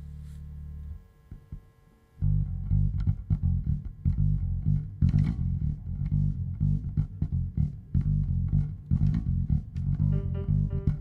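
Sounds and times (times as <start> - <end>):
bass guitar low note: 2.2 - 11.0
faint string plucks: 2.6 - 11.0.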